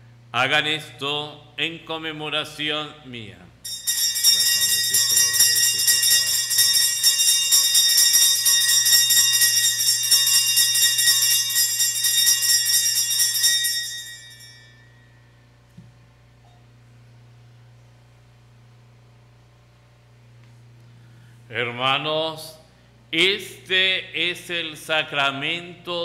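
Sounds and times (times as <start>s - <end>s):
bells jingling: 3.7s - 15.2s.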